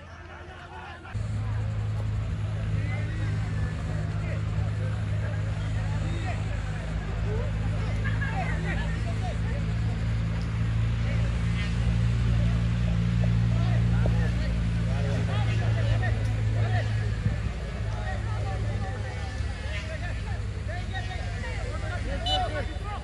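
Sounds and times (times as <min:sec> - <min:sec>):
distant crowd chatter: 0:00.0 - 0:23.0
low engine hum: 0:00.0 - 0:23.0.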